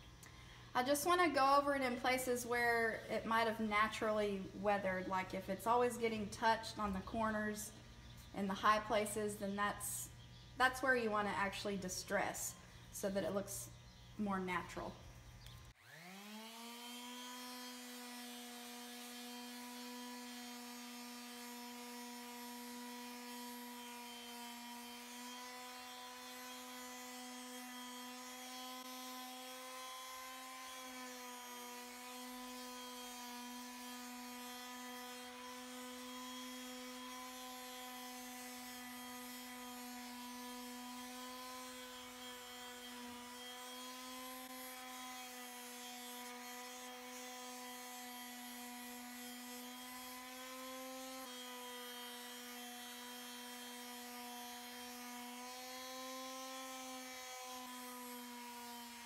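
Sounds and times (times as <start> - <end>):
electric sander on wood: 0.7 - 59.0.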